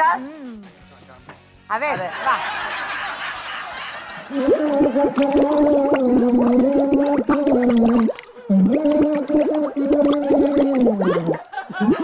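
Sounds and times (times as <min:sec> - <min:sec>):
man singing underwater: 0:04.3 - 0:11.2.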